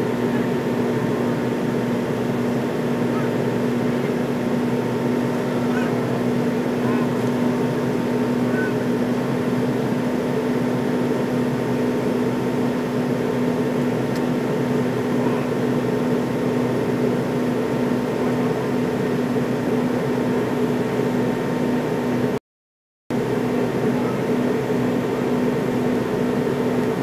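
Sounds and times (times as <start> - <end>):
jet engine drone: 0.0 - 22.4, 23.1 - 27.0.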